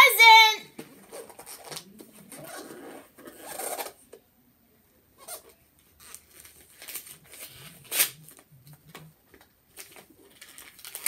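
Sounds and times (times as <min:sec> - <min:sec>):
paper ripping: 0:06.0 - 0:08.4
wrapping paper rustling: 0:06.0 - 0:09.0, 0:09.7 - 0:11.0.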